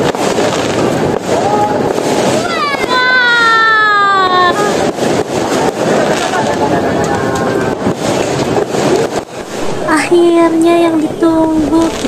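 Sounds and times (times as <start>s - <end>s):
fireworks popping: 0.0s - 12.0s
crowd talking and calling out: 1.2s - 12.0s.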